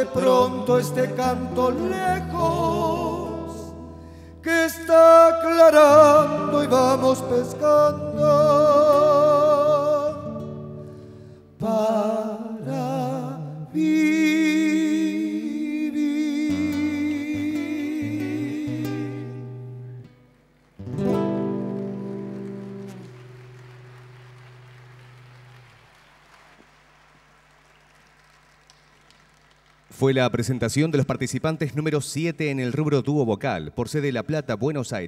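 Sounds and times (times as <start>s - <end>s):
men singing with vibrato: 0.0s - 3.8s, 4.4s - 10.4s, 11.6s - 19.4s
acoustic guitars: 0.0s - 26.0s
strummed acoustic guitar chord: 16.5s - 25.4s.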